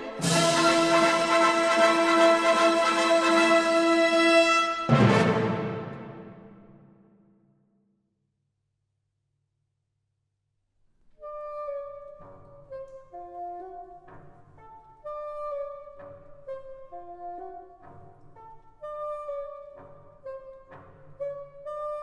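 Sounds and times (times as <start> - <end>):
low orchestral chords: 0.0 - 6.8.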